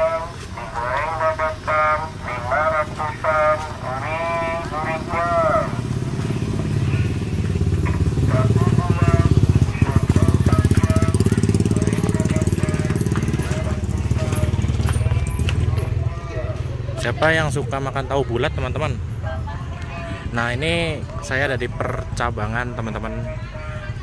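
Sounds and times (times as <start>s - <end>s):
motorcycle engine running: 0.0s - 19.3s
voices: 0.0s - 24.0s.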